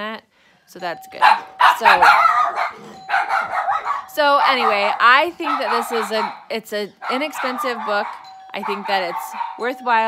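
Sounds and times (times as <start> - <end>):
dog barking: 1.2 - 9.8.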